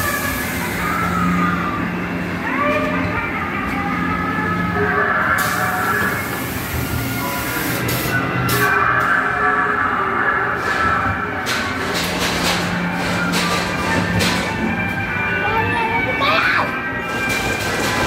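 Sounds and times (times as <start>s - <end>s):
eerie wailing gliding tones: 0.0s - 7.7s
ride car running on track: 0.0s - 18.0s.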